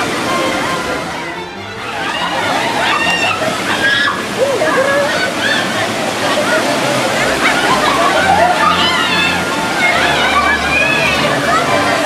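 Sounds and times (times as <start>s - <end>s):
water rushing and falling: 0.0s - 12.0s
girls shouting and laughing: 0.5s - 12.0s.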